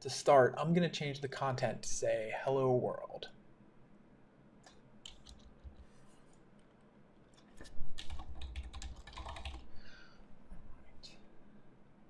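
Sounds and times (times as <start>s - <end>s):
typing on computer keyboard: 4.6s - 5.8s, 8.0s - 9.7s.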